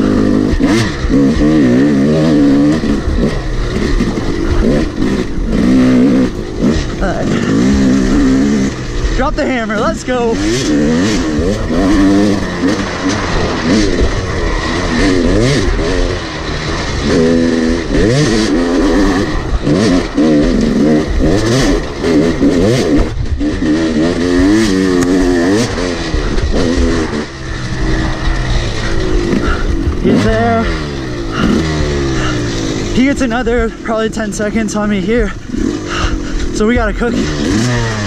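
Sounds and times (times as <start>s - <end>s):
motorcycle engine revving: 0.0s - 38.0s.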